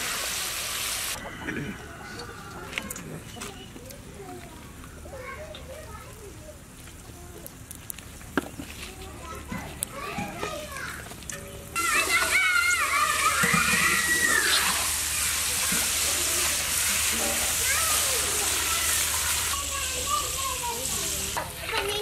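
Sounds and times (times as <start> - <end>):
hot oil sizzling: 0.0 - 1.2, 11.3 - 22.0.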